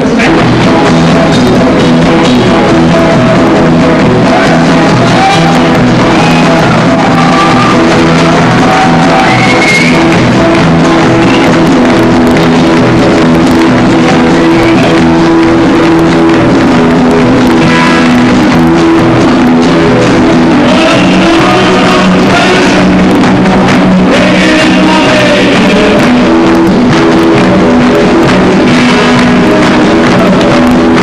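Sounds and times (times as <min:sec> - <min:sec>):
drum kit: 0:00.0 - 0:31.0
strummed acoustic guitar: 0:00.0 - 0:31.0.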